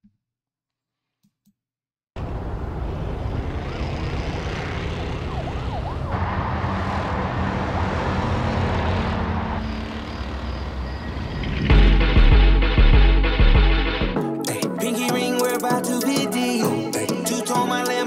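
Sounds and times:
siren wail: 2.2s - 11.8s
low traffic rumble: 2.2s - 13.0s
heavy bass beat: 11.7s - 14.7s.

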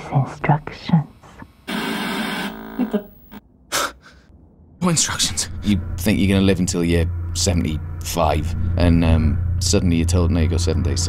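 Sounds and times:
buzzing glitch: 1.7s - 3.4s.

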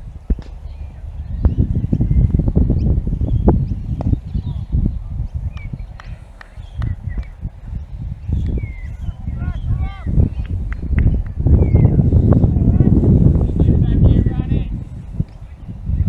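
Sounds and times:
wind buffeting microphone: 0.0s - 16.0s
small birds chirping: 0.2s - 16.0s.

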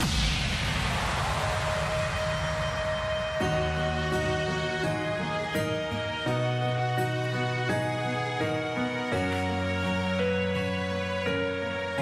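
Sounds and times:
sound effect rumble with hiss: 0.0s - 3.6s.

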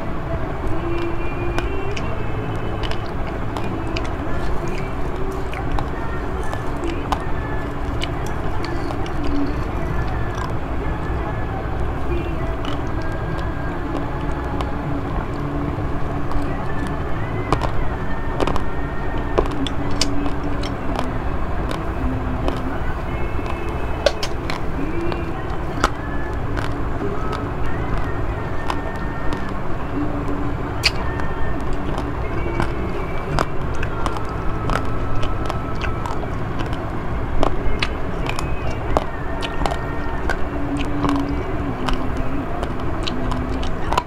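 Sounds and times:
chewing: 0.0s - 44.0s
low background rumble: 0.0s - 44.0s.

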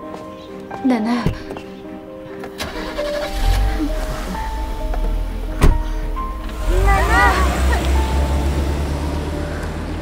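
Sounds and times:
background music: 0.0s - 10.0s
car engine rumbling: 2.6s - 10.0s.

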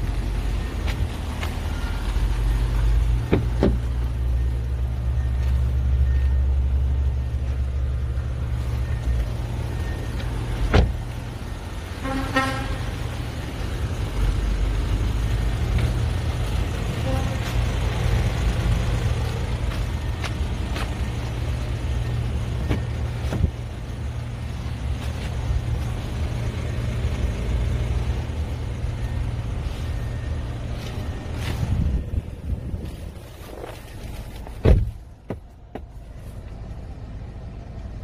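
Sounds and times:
steady low rumble: 12.8s - 38.0s.

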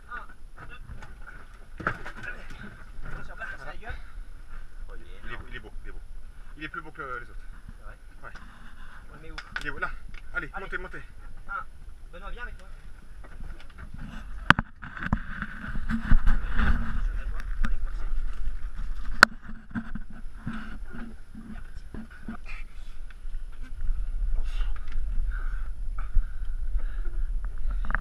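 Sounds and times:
wind on microphone: 11.0s - 28.0s.

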